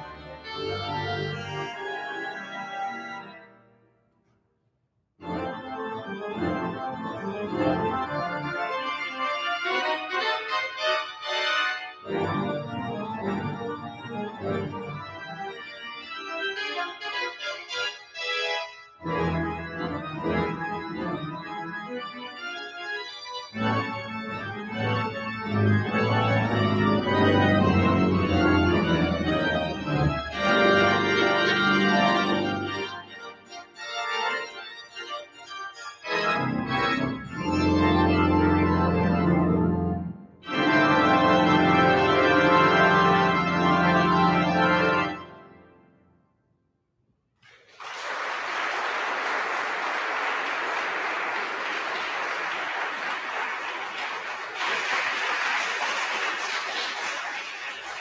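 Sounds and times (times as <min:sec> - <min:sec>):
pipe organ chords: 0:00.0 - 0:03.7, 0:05.2 - 0:46.0
deep organ pedal bass: 0:05.2 - 0:09.0, 0:12.1 - 0:16.0, 0:19.0 - 0:45.4.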